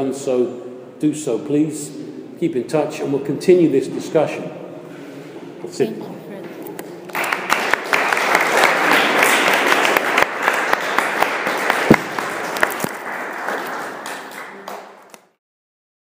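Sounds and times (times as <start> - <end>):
audience applauding: 7.0 - 15.3.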